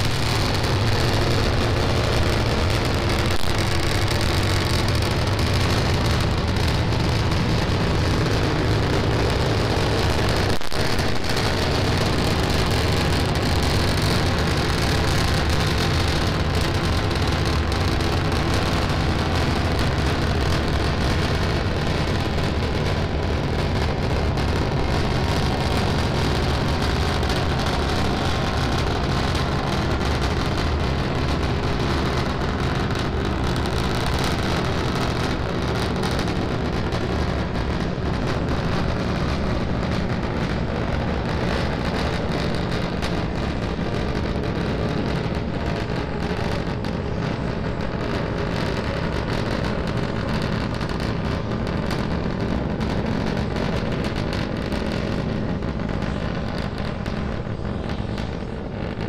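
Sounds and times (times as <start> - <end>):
rocket engines roaring: 0.0 - 59.0.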